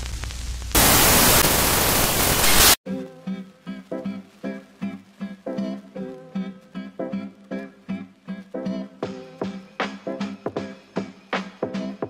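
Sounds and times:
television static hiss: 0.0 - 12.0.

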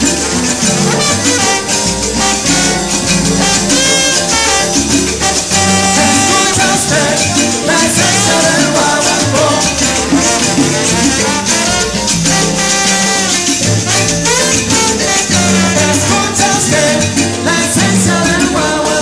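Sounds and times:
bass: 0.0 - 19.0
hand percussion: 0.0 - 19.0
salsa band playing: 0.0 - 19.0
trombone: 0.0 - 19.0
person singing: 6.3 - 10.0, 15.8 - 19.0.

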